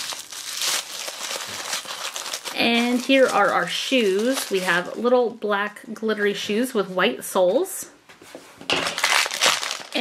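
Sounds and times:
crinkly wrapper crackling: 0.0 - 5.0, 8.9 - 10.0.

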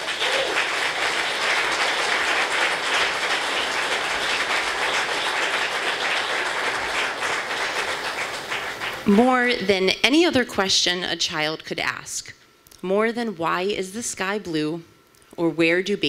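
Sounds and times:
audience applauding: 0.0 - 9.2.

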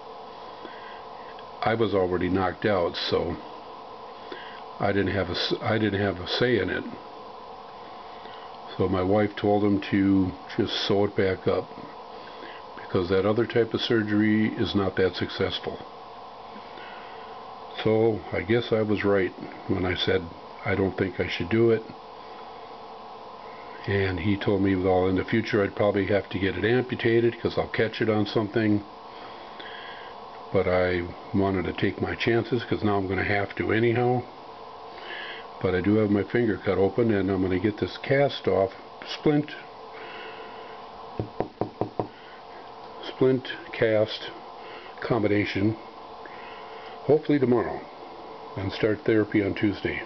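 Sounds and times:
faint steady hum: 0.0 - 50.0
man speaking: 1.6 - 3.4, 4.8 - 7.0, 8.7 - 11.7, 12.8 - 15.8, 17.8 - 21.9, 23.8 - 28.9, 30.5 - 34.3, 35.6 - 39.7, 43.0 - 44.4, 45.0 - 45.8, 47.1 - 47.9, 48.6 - 50.0
quick knocks: 41.2 - 42.2.

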